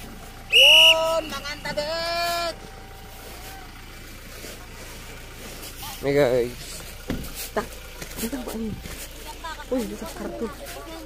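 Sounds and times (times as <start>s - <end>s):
person shouting high-pitched: 0.6s - 2.6s.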